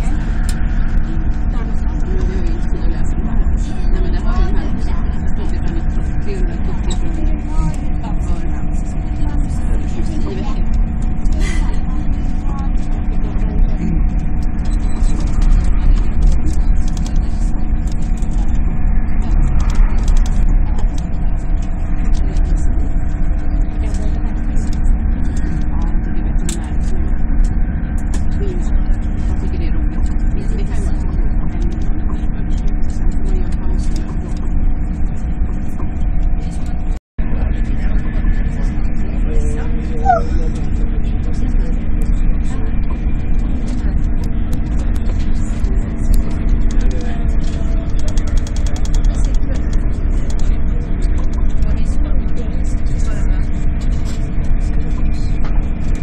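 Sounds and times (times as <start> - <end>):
constant train cabin hum: 0.0 - 56.0.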